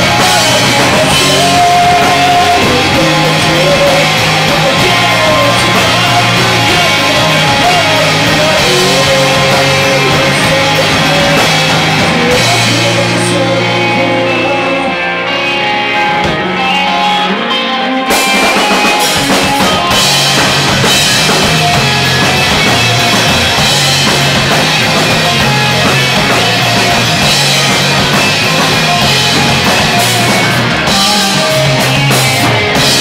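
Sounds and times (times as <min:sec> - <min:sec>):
drum kit and cymbals: 0:00.0 - 0:14.6, 0:18.0 - 0:33.0
electric guitars: 0:00.0 - 0:33.0.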